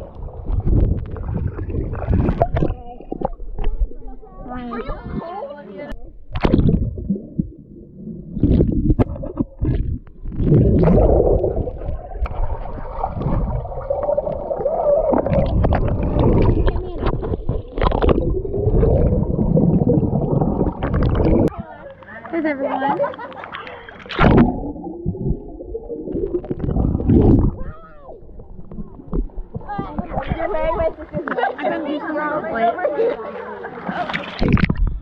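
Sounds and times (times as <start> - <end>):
underwater knocks and splashes: 0.0 - 4.2, 6.2 - 22.1, 22.9 - 31.5, 33.9 - 35.0
underwater bubbling and churning: 0.0 - 22.1, 23.0 - 31.4, 34.1 - 35.0.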